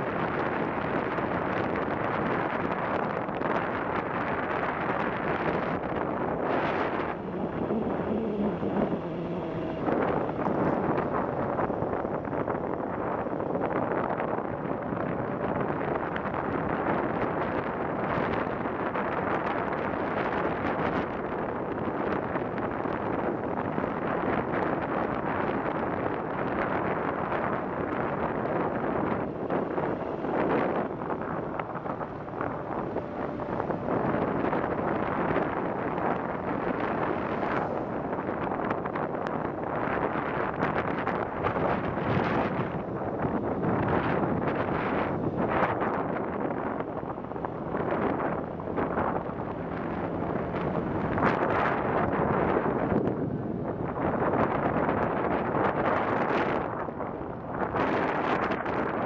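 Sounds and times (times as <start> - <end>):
wind rushing on microphone: 0.0 - 59.0.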